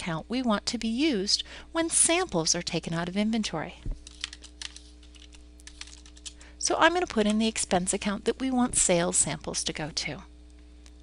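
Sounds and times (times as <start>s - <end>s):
faint electrical hum: 0.0s - 11.0s
keyboard typing: 4.0s - 6.4s.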